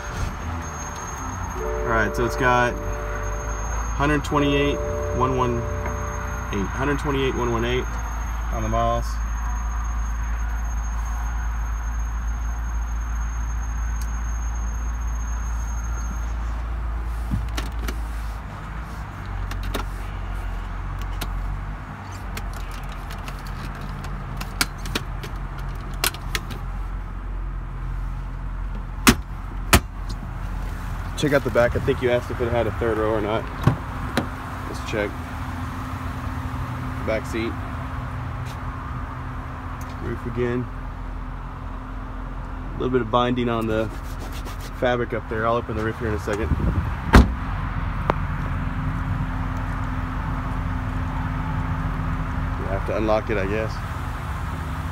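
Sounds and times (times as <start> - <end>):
car engine idling: 0.0 - 8.8.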